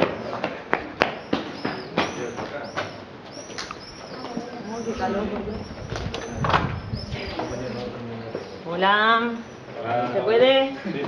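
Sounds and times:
small birds chirping: 0.0s - 10.7s
murmur of voices: 1.8s - 11.0s.

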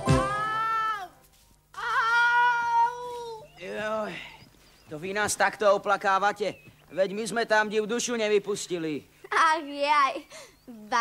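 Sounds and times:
person wailing: 1.8s - 3.4s.

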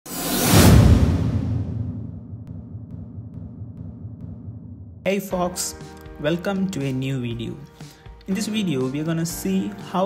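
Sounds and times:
deep rumble: 0.7s - 5.0s.

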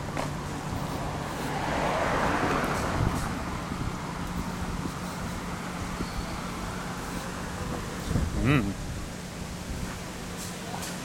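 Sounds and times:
car passing by: 0.0s - 7.0s.

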